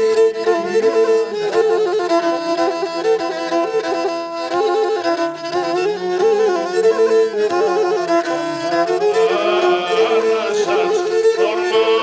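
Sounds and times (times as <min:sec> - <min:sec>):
bowed lyra sustained notes: 0:00.0 - 0:12.0
man singing: 0:00.3 - 0:01.5, 0:08.7 - 0:12.0.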